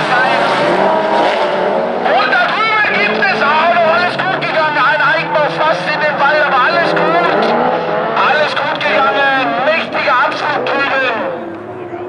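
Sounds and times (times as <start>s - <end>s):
car engines revving: 0.0s - 12.0s
person talking: 2.0s - 12.0s.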